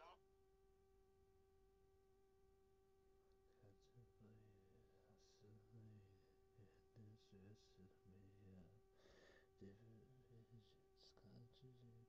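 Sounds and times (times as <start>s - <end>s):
faint steady electrical tone: 0.0s - 12.0s.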